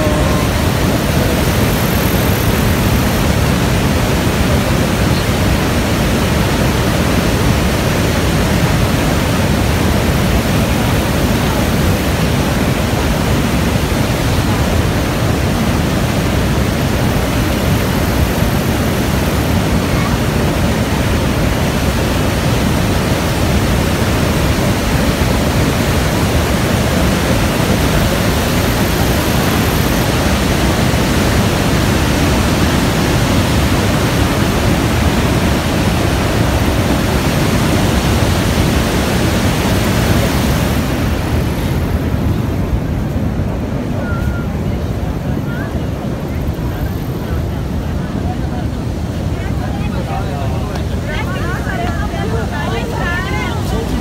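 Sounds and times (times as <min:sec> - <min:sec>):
waterfall rushing: 0:00.0 - 0:54.0.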